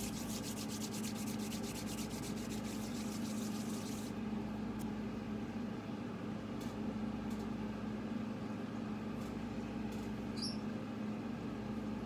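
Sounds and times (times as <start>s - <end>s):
palms rubbing together: 0.0s - 4.1s
steady low hum: 0.0s - 12.0s.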